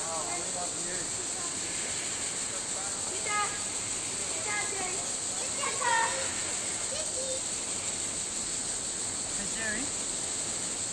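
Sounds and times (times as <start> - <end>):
faint distant voices: 0.0 - 8.3
outdoor hiss: 0.0 - 10.9.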